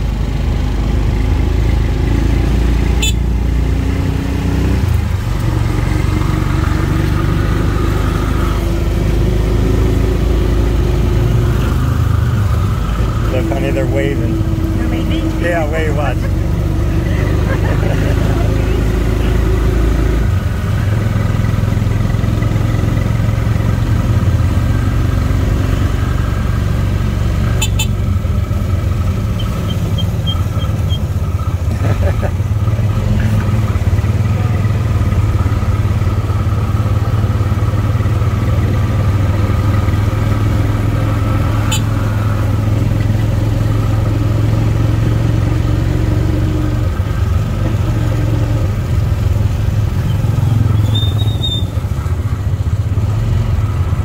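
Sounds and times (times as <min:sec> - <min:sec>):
auto rickshaw engine running: 0:00.0 - 0:54.0.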